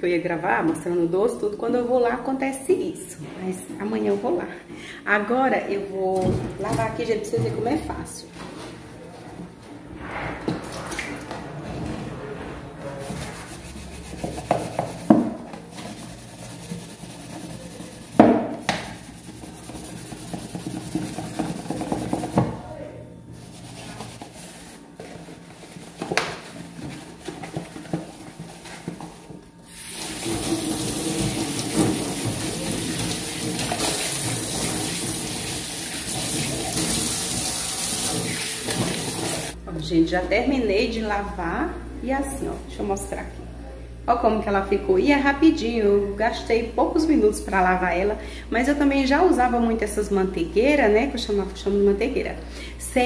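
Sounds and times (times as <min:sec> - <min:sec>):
plastic tub scrubbed in sink: 0:09.4 - 0:22.6, 0:23.3 - 0:39.6
tap running: 0:14.0 - 0:22.6, 0:23.7 - 0:39.6
tub knocking against metal sink: 0:18.2 - 0:19.0, 0:20.2 - 0:22.6.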